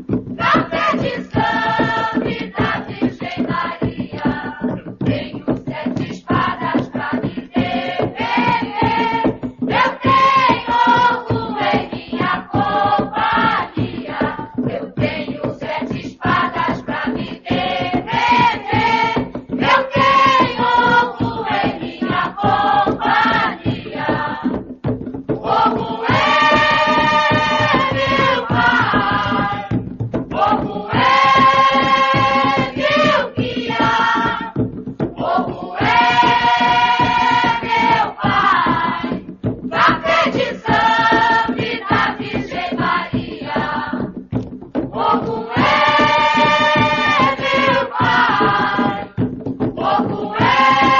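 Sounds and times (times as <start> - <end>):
steady rhythmic beat: 0.0 - 50.9
choir chanting: 0.4 - 24.5, 25.4 - 34.6, 35.2 - 44.0, 44.9 - 49.1, 49.8 - 50.9.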